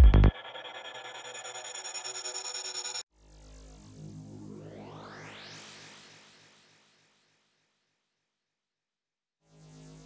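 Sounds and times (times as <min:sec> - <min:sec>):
pulsing synth tone: 0:00.0 - 0:03.0.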